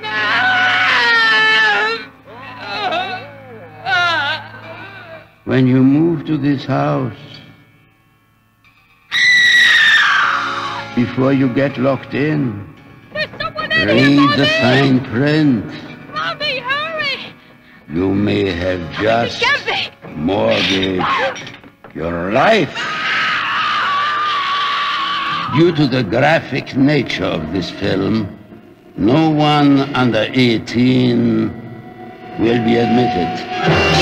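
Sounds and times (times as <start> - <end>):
girl screaming: 0.0 - 5.3, 9.1 - 10.9, 22.8 - 25.6
film score music: 0.0 - 34.0.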